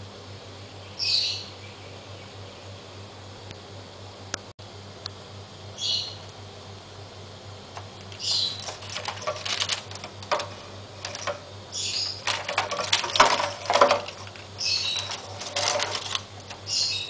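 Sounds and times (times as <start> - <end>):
bird high-pitched calls: 0.8 - 2.6, 5.8 - 6.2, 8.2 - 8.6, 16.6 - 17.0
paper rustling: 8.6 - 11.4, 12.1 - 16.6.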